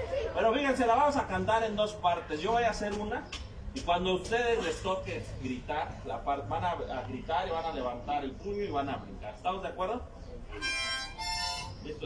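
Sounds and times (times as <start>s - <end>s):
reedy held musical notes: 10.5s - 12.0s.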